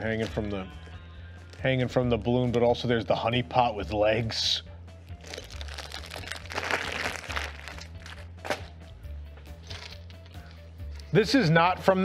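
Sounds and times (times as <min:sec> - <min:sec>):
background music: 0:00.0 - 0:12.0
plastic packaging crinkling: 0:05.2 - 0:08.7.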